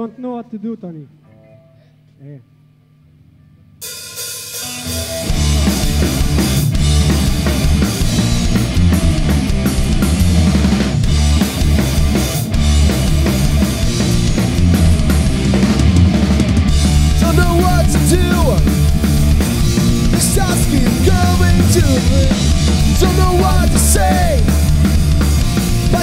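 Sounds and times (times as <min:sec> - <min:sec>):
punk rock band playing live: 0:04.1 - 0:26.0.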